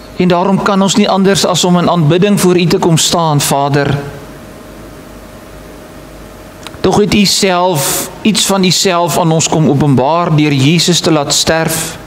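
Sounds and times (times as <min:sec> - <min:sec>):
faint steady hum: 0:00.0 - 0:12.0
recording hiss: 0:00.0 - 0:12.0.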